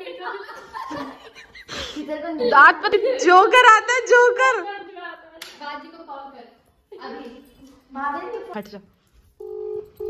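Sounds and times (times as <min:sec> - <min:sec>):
hand clap: 0:05.4 - 0:05.6.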